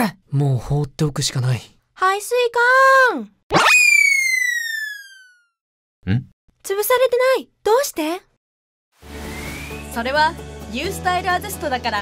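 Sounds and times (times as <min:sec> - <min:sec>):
cartoon upward sweep: 0:03.5 - 0:05.5.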